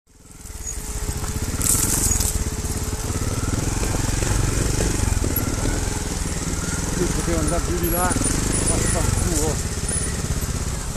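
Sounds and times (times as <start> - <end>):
motorcycle engine at low speed: 0.1 - 10.9.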